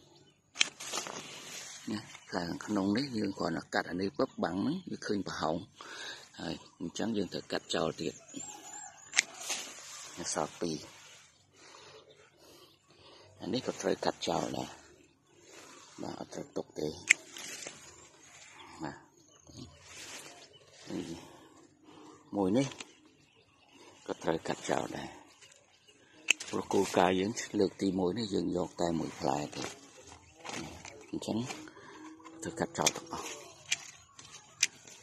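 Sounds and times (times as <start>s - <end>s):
person talking: 26.4s - 34.0s.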